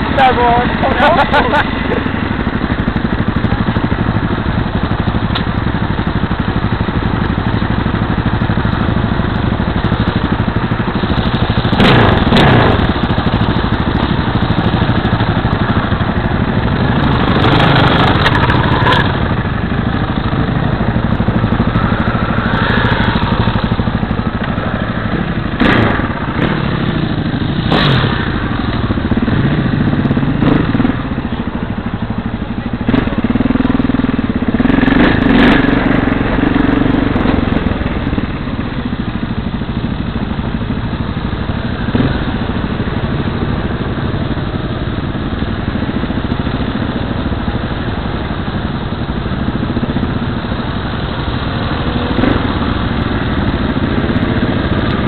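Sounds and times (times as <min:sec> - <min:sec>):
motorcycle engine idling: 0:00.0 - 0:55.0
second motorcycle engine: 0:00.0 - 0:55.0.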